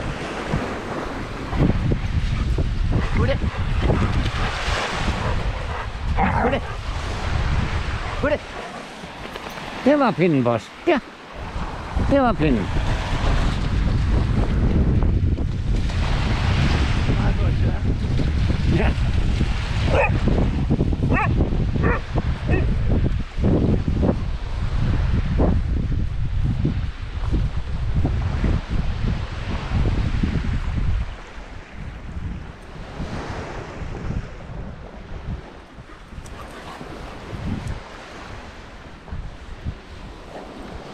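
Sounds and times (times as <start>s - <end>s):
small waves washing ashore: 0.0s - 40.9s
wind buffeting microphone: 0.0s - 40.9s
dog barking: 19.8s - 20.2s, 21.1s - 22.8s.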